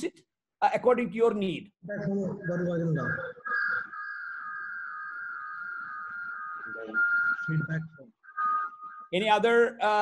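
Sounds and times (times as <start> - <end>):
high-pitched whistling tone: 2.0 - 9.4.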